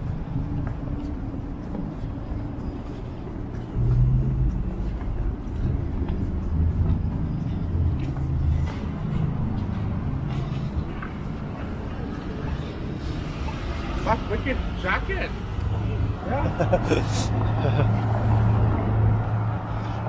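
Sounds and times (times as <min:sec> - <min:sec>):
traffic rumble: 0:00.0 - 0:20.0.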